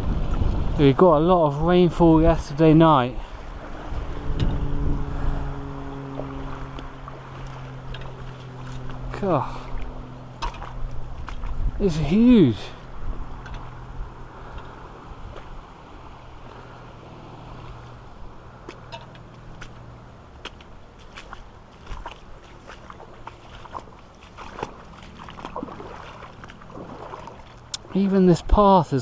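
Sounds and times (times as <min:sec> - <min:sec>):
floodwater rushing: 0:00.0 - 0:29.0
boots splashing through water: 0:03.2 - 0:16.8, 0:17.5 - 0:28.9.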